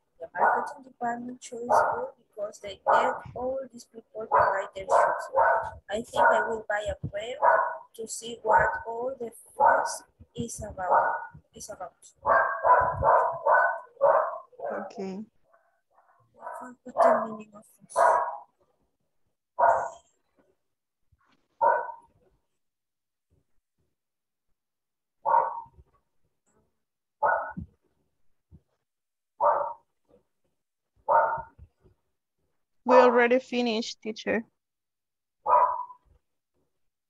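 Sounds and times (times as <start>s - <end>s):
dog barking: 0.4s - 0.8s, 1.7s - 2.2s, 2.8s - 3.4s, 4.3s - 6.6s, 7.4s - 8.9s, 9.6s - 10.1s, 10.8s - 11.4s, 12.2s - 14.9s, 16.0s - 18.6s, 19.6s - 20.0s, 21.6s - 22.1s, 25.3s - 25.8s, 27.2s - 27.7s, 29.4s - 29.8s, 31.1s - 31.6s, 35.5s - 36.0s.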